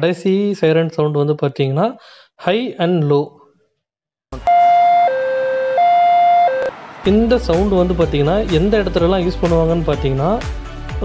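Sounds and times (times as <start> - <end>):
two-tone ambulance siren: 4.4 - 7.1.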